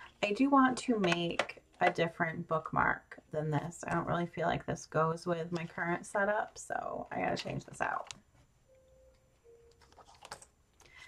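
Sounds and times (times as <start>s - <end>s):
paper pages turning in binder: 9.7s - 10.5s.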